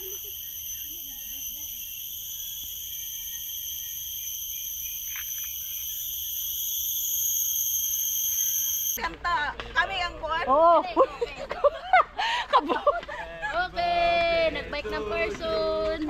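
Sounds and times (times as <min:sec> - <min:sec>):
falling whistle: 0:00.0 - 0:09.0
insects droning: 0:00.0 - 0:09.0.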